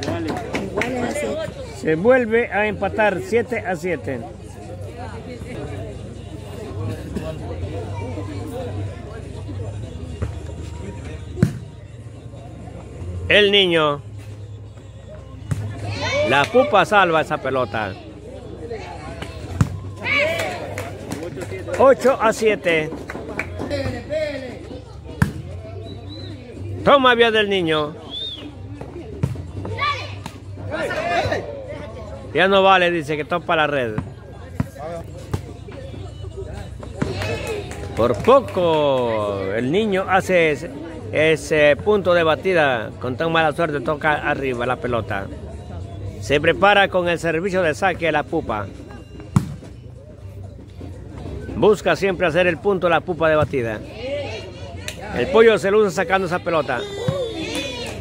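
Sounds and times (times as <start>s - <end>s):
faint crowd murmur: 0.0s - 58.0s
spectators chattering: 0.0s - 58.0s.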